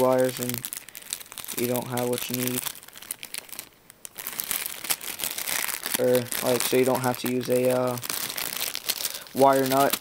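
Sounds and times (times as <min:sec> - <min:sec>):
crinkling packaging handling: 0:00.0 - 0:10.0.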